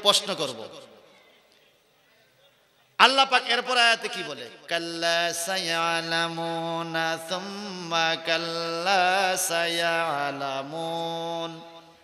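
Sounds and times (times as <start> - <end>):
man chanting: 3.0 - 12.0.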